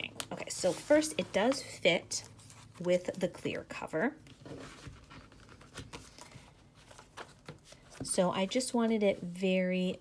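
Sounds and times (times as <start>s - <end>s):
paper pages rustling: 0.2s - 3.4s, 4.2s - 8.7s.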